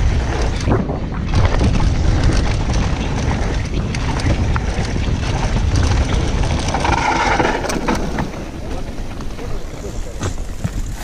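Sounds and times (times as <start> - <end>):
bike tyres on gravel: 0.0 - 11.0
stones and bike rattling: 0.0 - 11.0
wind buffeting microphone: 0.0 - 11.0.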